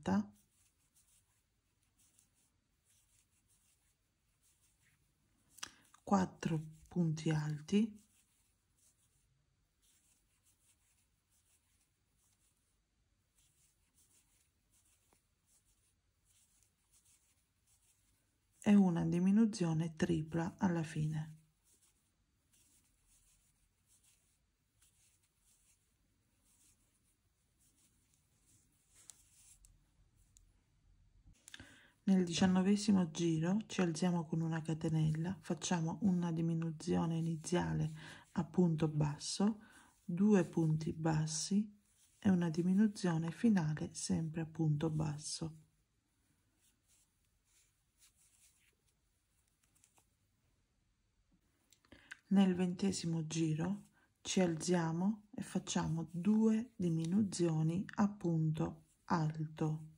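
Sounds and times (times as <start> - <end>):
crochet hook rubbing yarn: 0.0 - 30.5, 32.4 - 45.6, 46.6 - 50.2, 52.8 - 59.9.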